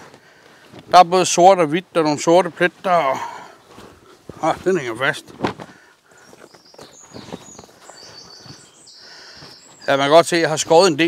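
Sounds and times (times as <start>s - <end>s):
birds singing: 3.1s - 11.0s
high bird trill: 6.4s - 10.6s.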